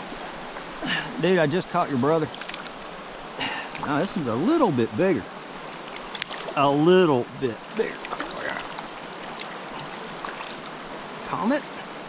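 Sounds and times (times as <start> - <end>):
creek water flowing over rocks: 0.0 - 12.0
faint clicks: 5.7 - 6.6.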